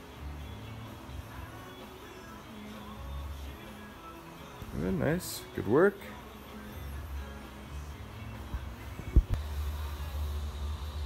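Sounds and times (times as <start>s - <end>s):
low room hum: 0.1s - 11.0s.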